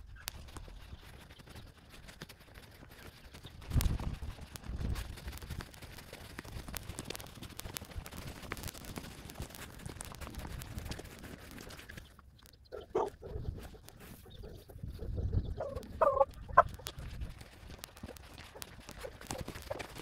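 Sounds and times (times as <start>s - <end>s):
footsteps crunching on gravel: 15.6s - 20.0s.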